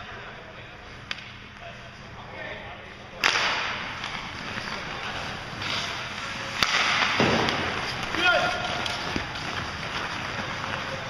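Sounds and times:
hockey sticks cracking on puck: 0:01.0 - 0:01.3, 0:03.2 - 0:11.0
skates scraping ice: 0:03.4 - 0:11.0.

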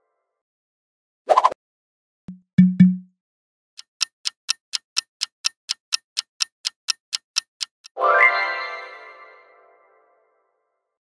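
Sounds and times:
clock-like countdown ticking: 0:02.3 - 0:03.1, 0:03.8 - 0:08.0.

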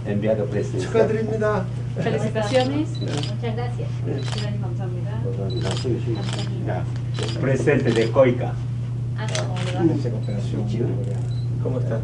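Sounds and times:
low conversation: 0:00.0 - 0:12.0
steady low hum: 0:00.0 - 0:12.0
camera shutter clicks: 0:02.5 - 0:03.4, 0:04.2 - 0:04.5, 0:05.6 - 0:06.5, 0:07.1 - 0:08.1, 0:09.2 - 0:09.8.

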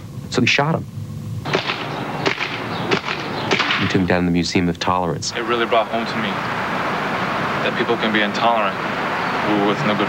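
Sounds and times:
sharp pops: 0:01.4 - 0:04.0.

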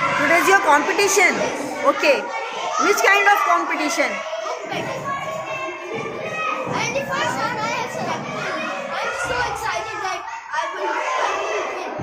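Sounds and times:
children chattering in a hall: 0:00.0 - 0:12.0.

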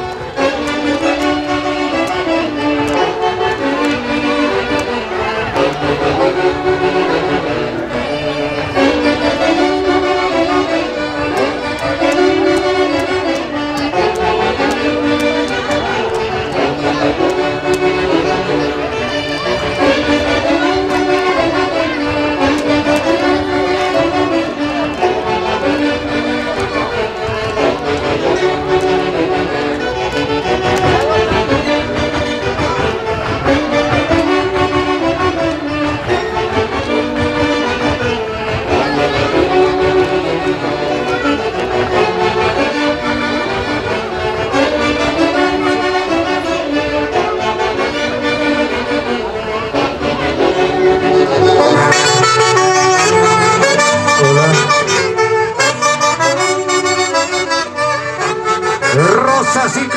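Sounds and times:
folk orchestra with saxophones: 0:00.0 - 0:59.9.

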